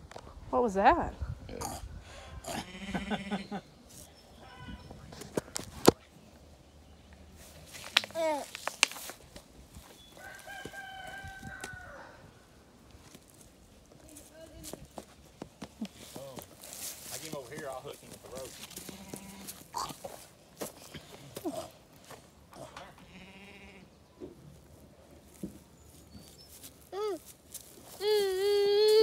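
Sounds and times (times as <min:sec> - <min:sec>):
farm animal bleating: 0:02.4 - 0:03.6, 0:04.3 - 0:04.9, 0:18.3 - 0:20.2, 0:22.5 - 0:24.0
rooster crowing: 0:10.2 - 0:12.4.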